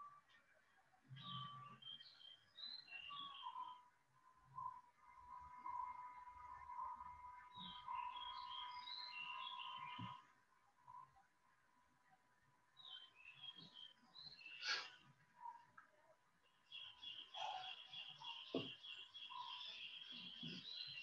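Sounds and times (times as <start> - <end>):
faint birdsong chirping: 0.0 - 21.0.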